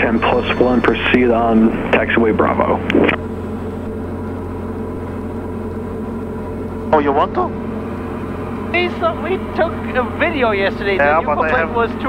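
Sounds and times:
propeller aircraft engine drone: 0:00.0 - 0:12.0.

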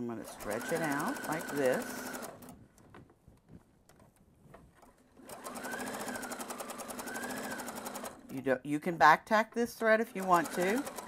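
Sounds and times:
sewing machine stitching: 0:00.0 - 0:02.6, 0:04.9 - 0:08.4, 0:09.8 - 0:11.0.

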